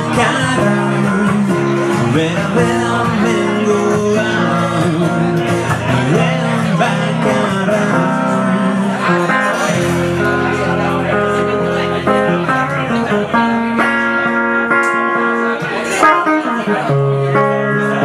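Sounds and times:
two guitars playing chords: 0:00.0 - 0:18.0.

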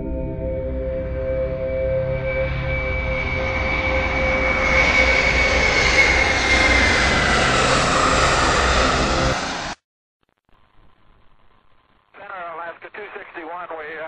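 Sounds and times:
jet engine and air roar: 0:01.6 - 0:09.8.

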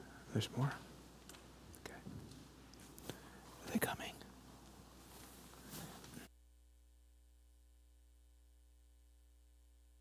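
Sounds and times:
faint whisper: 0:01.8 - 0:02.2, 0:02.9 - 0:04.4.

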